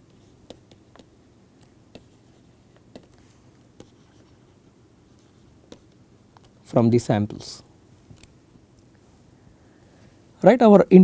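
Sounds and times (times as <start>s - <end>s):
low background hiss: 0.0s - 11.0s
stylus scratching on screen: 1.9s - 6.0s.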